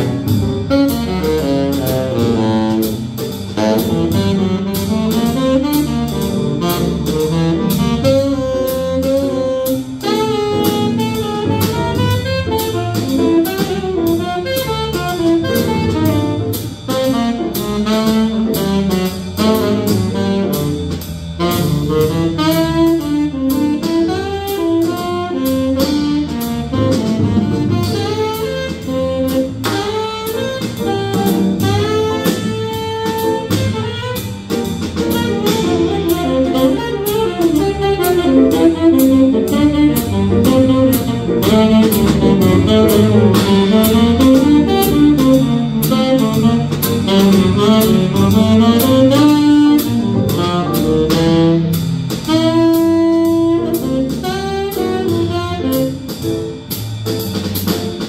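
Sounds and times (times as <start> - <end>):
saxophone melody: 0.0 - 56.7
drum kit: 0.0 - 58.0
electric bass: 0.0 - 58.0.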